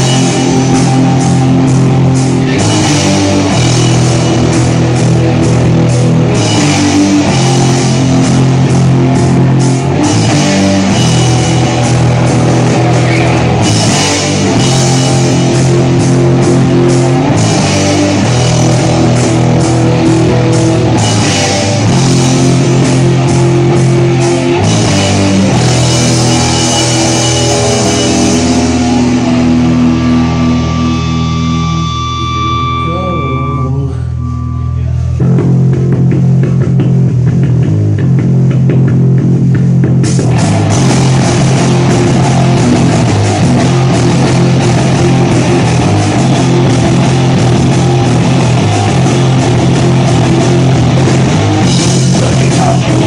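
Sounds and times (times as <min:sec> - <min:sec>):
drum kit: 0:00.0 - 0:34.0, 0:34.8 - 0:53.0
bass guitar: 0:00.0 - 0:53.0
electric guitar chords: 0:00.0 - 0:53.0
punk metal band playing: 0:00.0 - 0:53.0.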